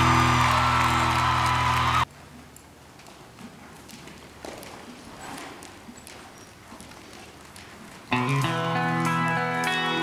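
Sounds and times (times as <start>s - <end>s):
hoofbeats on soft dirt: 2.1s - 10.0s.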